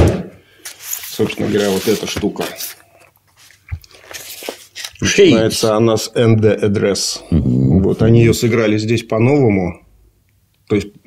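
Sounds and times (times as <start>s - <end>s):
cardboard record sleeves crackling: 0.6s - 2.8s, 3.4s - 5.8s.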